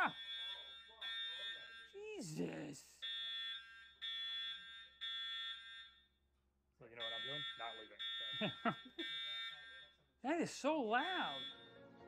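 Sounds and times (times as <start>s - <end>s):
fire alarm beeping: 0.0s - 6.1s, 7.0s - 10.1s, 10.9s - 11.8s.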